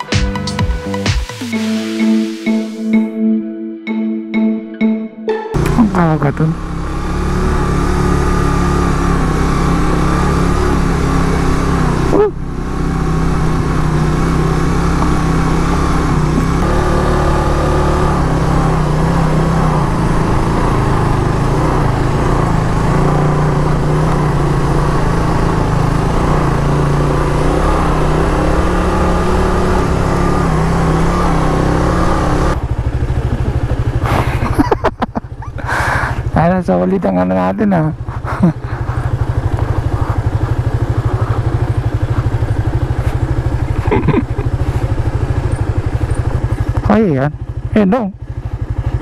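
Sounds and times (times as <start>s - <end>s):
motorcycle engine running: 5.6s - 49.0s.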